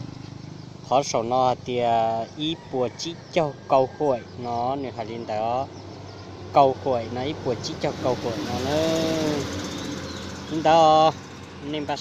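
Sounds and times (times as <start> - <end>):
faint road noise: 0.0 - 12.0
vehicle engine hum: 0.0 - 12.0
person speaking: 6.6 - 9.5.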